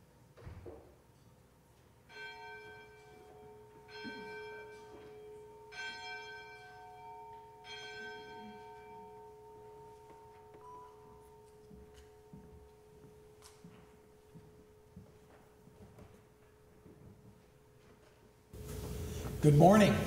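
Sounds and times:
handbell choir ringing chords: 2.1 - 12.4
high bell tone: 2.1 - 13.6
low bells humming: 2.1 - 15.0.

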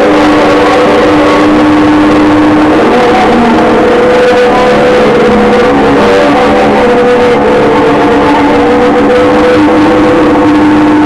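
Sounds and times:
distorted noise music: 0.0 - 11.0
wavering drone tones: 0.0 - 11.0.

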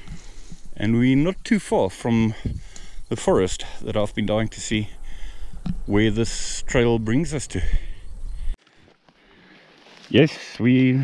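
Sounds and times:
faint outdoor background hiss: 0.0 - 11.0.

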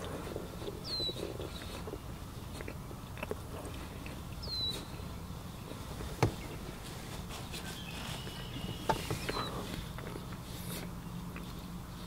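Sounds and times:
chewing food close up: 0.0 - 5.8, 7.5 - 12.0
bird whistle: 7.6 - 9.6.

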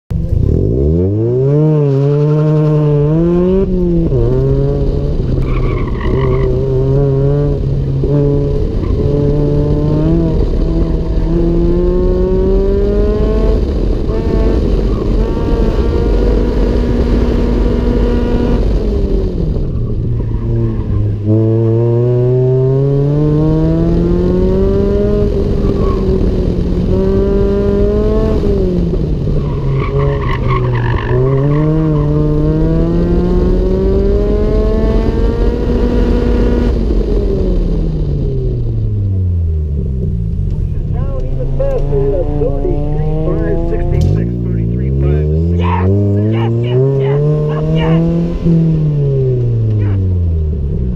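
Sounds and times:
car engine revving: 0.1 - 50.9
tyre squeal: 29.4 - 32.2.

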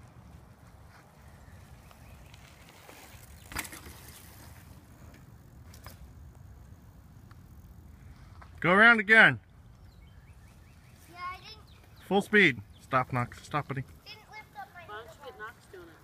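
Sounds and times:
bike tyres crunching on dirt: 0.0 - 16.0.

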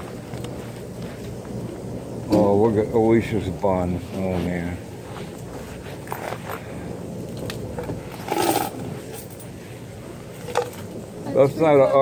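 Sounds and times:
store background noise: 0.0 - 12.0.

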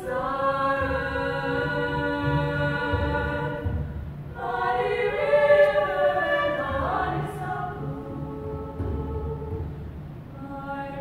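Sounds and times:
girls' choir singing in harmony: 0.0 - 11.0.

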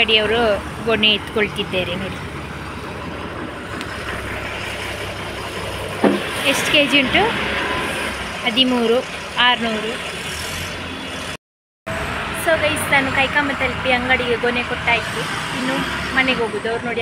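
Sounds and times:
people talking: 0.0 - 2.2, 6.1 - 7.4, 8.4 - 10.0, 12.4 - 17.0
road traffic noise: 0.0 - 17.0.

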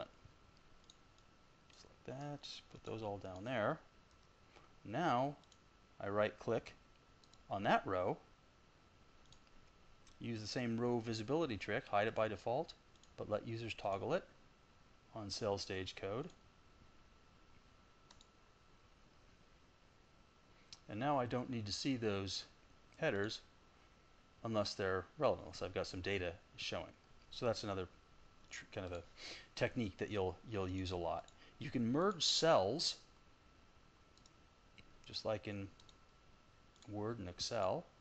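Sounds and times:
faint steady whine: 0.0 - 38.0
computer mouse clicks: 0.8 - 1.9, 4.1 - 4.4, 5.4 - 5.6, 6.9 - 7.5, 9.2 - 10.2, 12.6 - 13.2, 18.1 - 18.4, 34.2 - 35.2, 35.8 - 36.0, 36.7 - 36.9.

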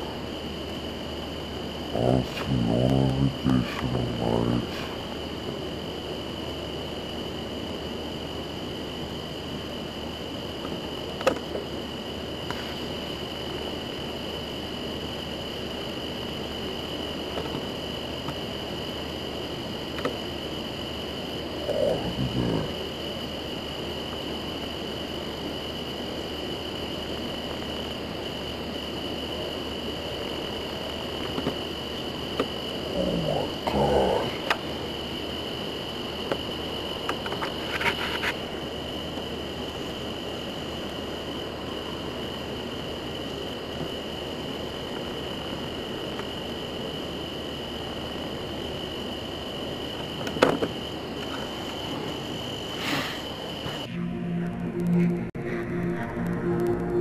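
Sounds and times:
low hiss: 0.0 - 54.5
crickets chirring: 0.0 - 57.0
brief low sound: 53.9 - 57.0.

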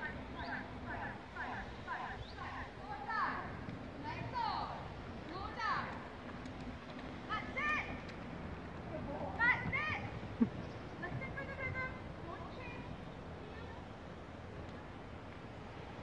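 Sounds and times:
distant high-pitched calls and shouts: 0.0 - 6.4, 7.0 - 16.0.

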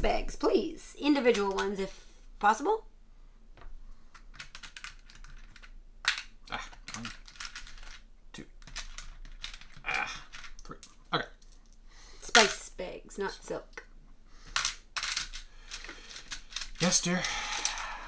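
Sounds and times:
wooden game pieces clicking: 4.1 - 12.6, 14.4 - 18.0.

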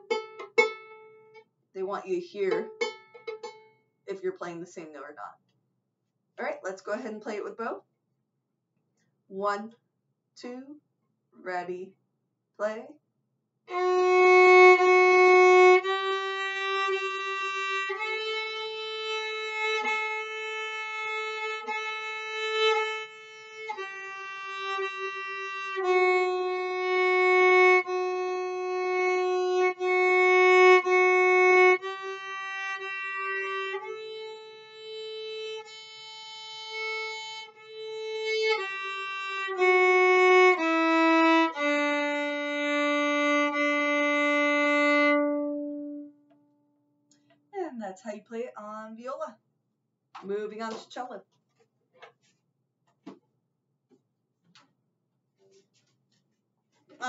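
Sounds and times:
bowed viola melody: 0.0 - 3.7, 13.7 - 46.3.

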